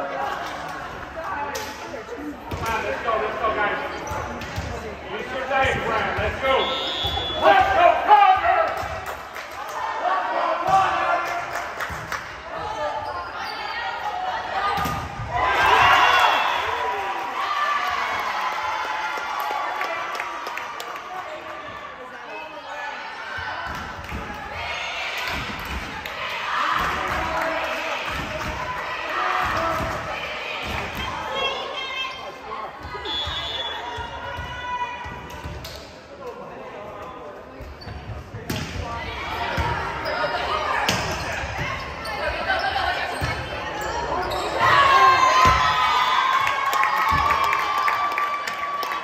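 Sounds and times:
players shouting calls: 5.2s - 8.8s
spectators yelling: 13.7s - 20.4s, 44.4s - 49.0s.

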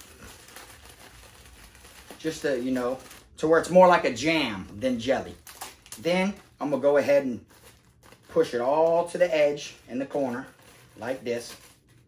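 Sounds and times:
jelly squelching in plastic bag: 0.0s - 12.0s.

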